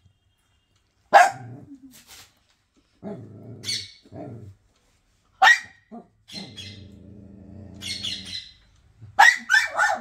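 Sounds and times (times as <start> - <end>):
dog barking: 1.1 - 1.6, 5.4 - 6.1, 9.2 - 10.0.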